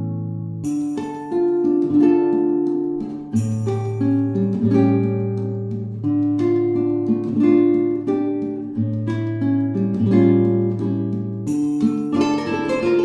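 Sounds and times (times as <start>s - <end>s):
acoustic guitar plucked and strummed: 0.0s - 13.0s.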